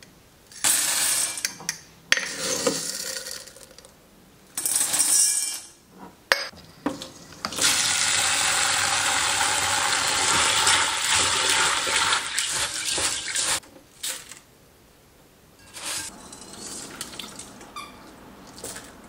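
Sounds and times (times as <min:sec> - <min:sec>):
beans rattling in a bowl: 0:02.8 - 0:03.9
water rushing in a bowl: 0:07.6 - 0:13.6.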